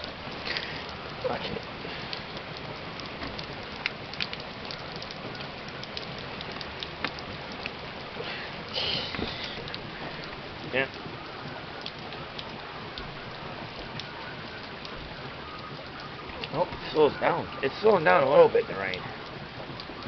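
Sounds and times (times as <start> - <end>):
heavy rain falling: 0.0 - 20.0.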